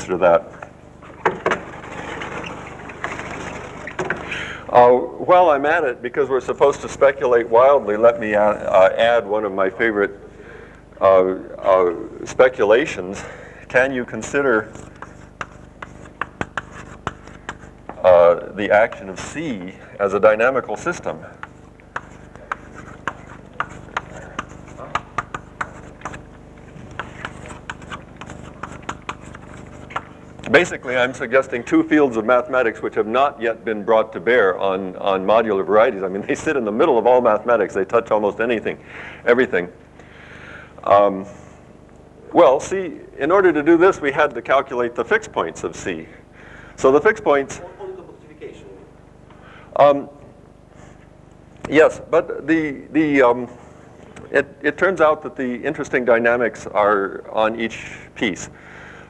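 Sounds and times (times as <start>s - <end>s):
steady low hum: 0.0s - 59.0s
chalk scratching on blackboard: 14.6s - 17.8s, 21.4s - 30.3s.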